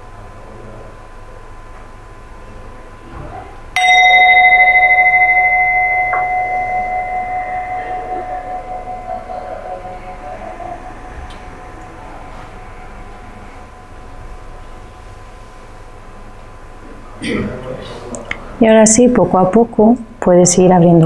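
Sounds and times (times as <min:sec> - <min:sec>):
singing bowl ringing: 0:03.8 - 0:16.2.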